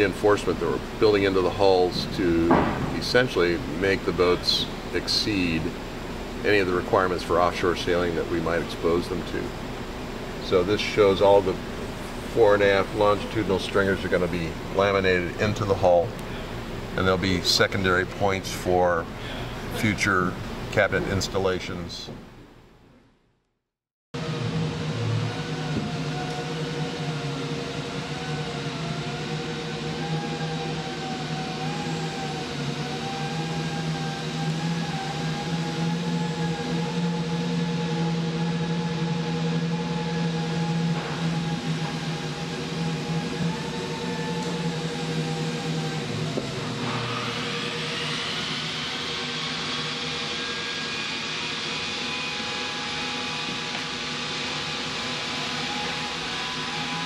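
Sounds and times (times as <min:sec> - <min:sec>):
machinery hum: 0:00.0 - 0:22.9, 0:24.2 - 0:57.0
motor whine spinning up: 0:24.2 - 0:57.0.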